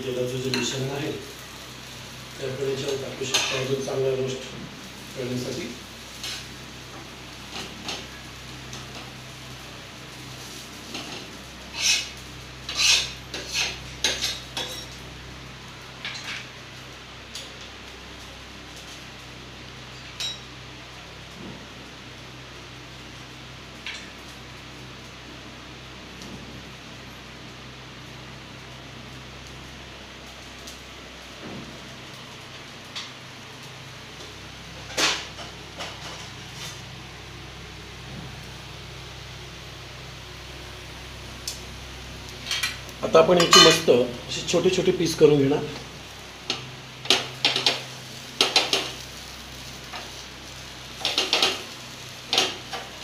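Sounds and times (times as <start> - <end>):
even hiss: 0.0 - 20.8, 27.9 - 53.0
steady low hum: 0.0 - 53.0
metal utensil scraping steel: 11.7 - 14.9.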